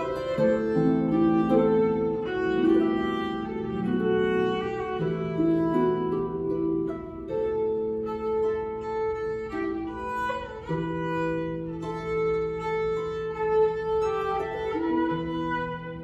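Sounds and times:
plucked harp: 0.0 - 16.0
violin bowed notes: 0.0 - 16.0.

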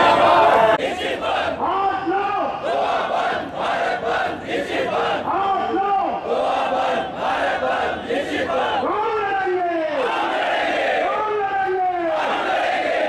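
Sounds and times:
crowd chanting slogans: 0.0 - 13.0.

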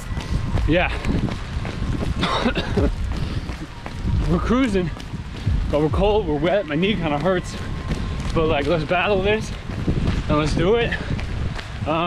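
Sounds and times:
low rumble from running: 0.0 - 12.0
man coughing: 2.2 - 3.0.

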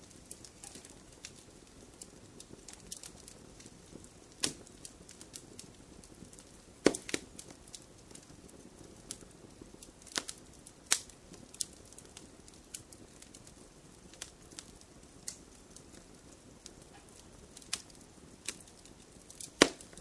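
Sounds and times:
burning logs crackling: 0.0 - 20.0
faint low hiss: 0.0 - 20.0.

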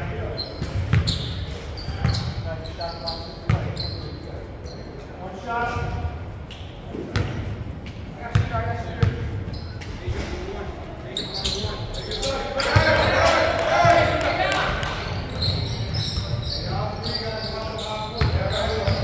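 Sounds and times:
sneakers squeaking: 0.2 - 5.1, 5.8 - 7.5, 8.3 - 10.5, 11.1 - 19.0
players and spectators calling out: 11.2 - 19.0.

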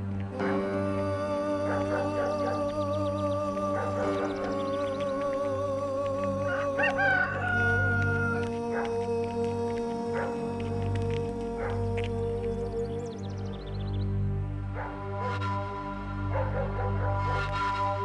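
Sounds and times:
soft background music: 0.0 - 18.0
steady low drone: 0.0 - 18.0
rooster crowing: 6.5 - 8.4.

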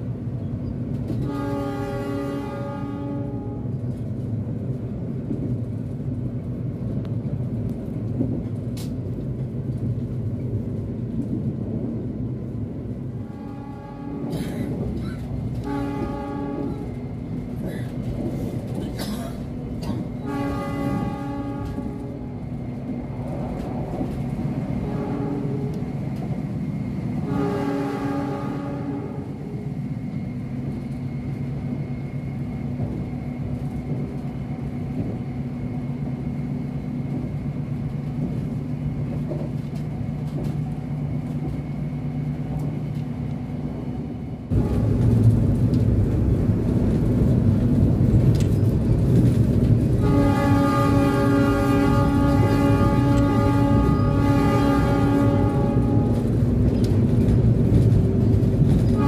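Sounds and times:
train running rumble: 0.0 - 59.0
train horn: 1.1 - 3.8, 13.2 - 14.6, 15.5 - 17.1, 19.8 - 22.4, 24.7 - 25.9, 27.2 - 29.6, 44.5 - 45.2, 49.9 - 56.4.

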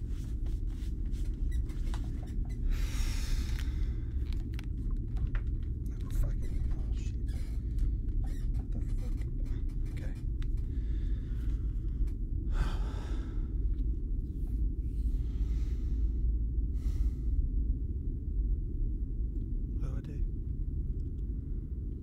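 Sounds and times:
low rumbling drone: 0.0 - 22.0.

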